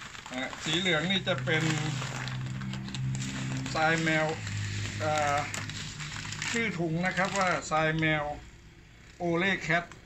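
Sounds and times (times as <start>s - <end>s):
plastic bag crinkling: 0.0s - 8.3s
person speaking: 0.3s - 8.4s.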